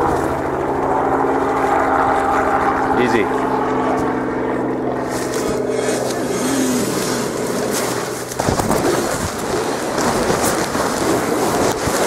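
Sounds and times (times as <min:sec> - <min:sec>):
steady engine drone: 0:00.0 - 0:12.0
wind noise on microphone: 0:05.0 - 0:12.0.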